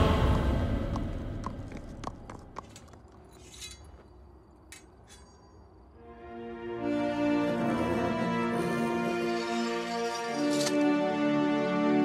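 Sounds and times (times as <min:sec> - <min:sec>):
music: 0:00.0 - 0:01.2, 0:06.0 - 0:12.0
horse hooves clopping: 0:00.8 - 0:04.1.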